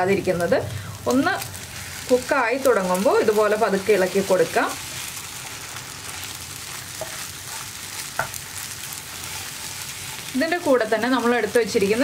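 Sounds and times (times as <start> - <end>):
egg sizzling in a pan: 0.0 - 12.0
wooden spatula stirring: 5.0 - 10.6.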